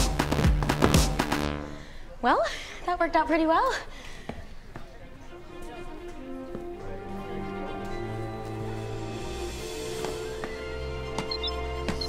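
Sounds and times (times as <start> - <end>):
quiet background music: 4.8 - 12.0.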